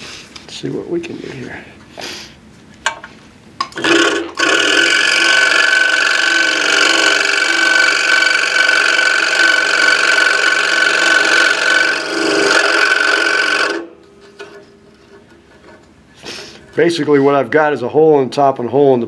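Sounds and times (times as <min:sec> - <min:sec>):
scroll saw cutting coin: 0:03.8 - 0:13.9.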